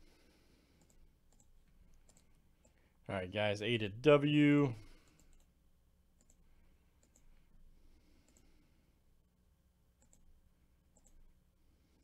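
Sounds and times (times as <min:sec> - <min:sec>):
computer mouse clicks: 0:00.7 - 0:02.8, 0:05.0 - 0:05.5, 0:06.2 - 0:07.4, 0:08.2 - 0:08.6, 0:10.0 - 0:10.3, 0:10.9 - 0:11.3.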